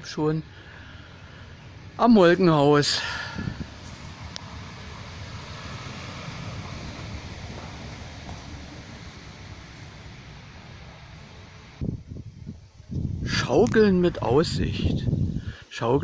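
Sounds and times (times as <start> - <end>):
low bumps: 1.7 - 13.8
wind noise on microphone: 3.0 - 16.0.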